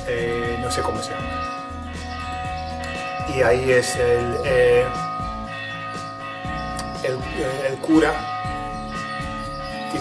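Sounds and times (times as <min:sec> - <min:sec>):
church bell ringing: 0:00.0 - 0:10.0.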